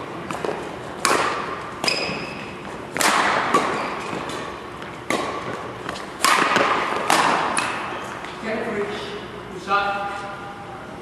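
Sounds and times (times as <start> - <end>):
rackets striking shuttlecock: 0.1 - 8.4.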